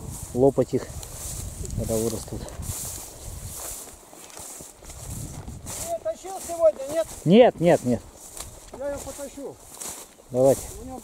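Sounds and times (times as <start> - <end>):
footsteps through tall grass: 0.0 - 11.0.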